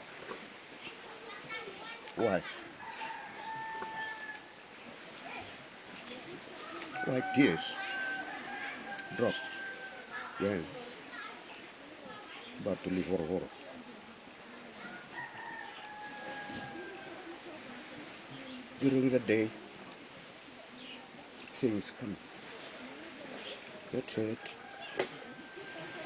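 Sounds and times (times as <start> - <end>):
rooster crowing: 2.8 - 4.5, 6.9 - 10.2, 14.9 - 17.3, 24.4 - 26.0.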